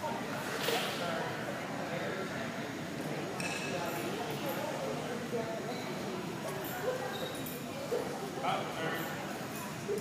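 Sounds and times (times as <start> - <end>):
background chatter in a hall: 0.0 - 10.0.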